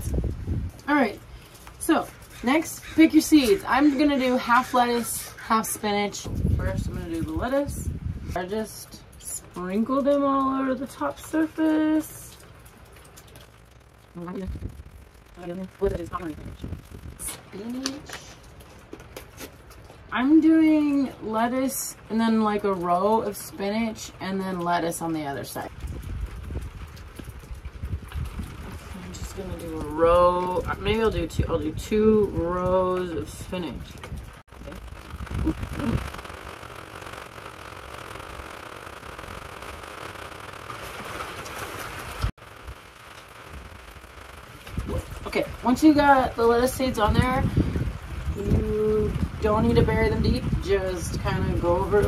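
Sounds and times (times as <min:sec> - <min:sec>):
steady rain falling: 0:00.0 - 0:52.0.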